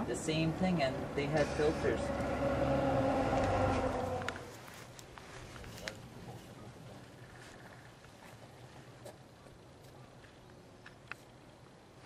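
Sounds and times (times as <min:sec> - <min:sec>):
engine humming steadily: 0:00.0 - 0:04.6.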